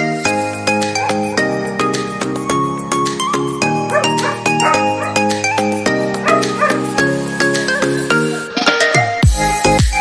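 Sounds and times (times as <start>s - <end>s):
background music: 0.0s - 10.0s
dog barking: 0.9s - 1.7s, 3.9s - 5.3s, 6.2s - 7.9s.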